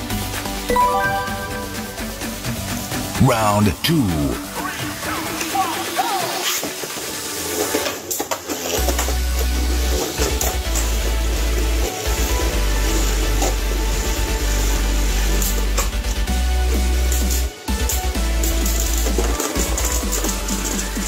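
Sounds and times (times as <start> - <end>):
background music: 0.0 - 6.4, 8.8 - 21.0.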